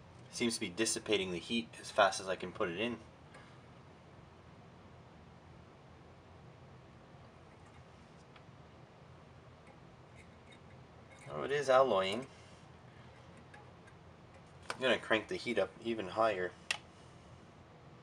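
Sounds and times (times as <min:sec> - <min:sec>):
faint room hiss: 0:00.0 - 0:18.0.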